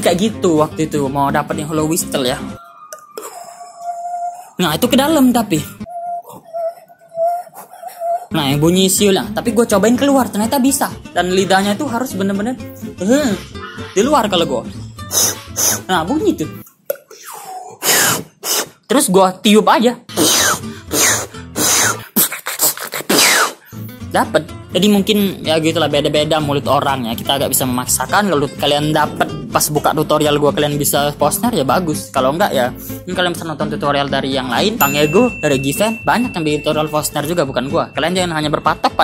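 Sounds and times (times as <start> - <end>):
bird calling: 2.6 - 8.3
beatboxer breathy bursts: 15.0 - 15.9, 17.1 - 18.9, 20.1 - 23.9.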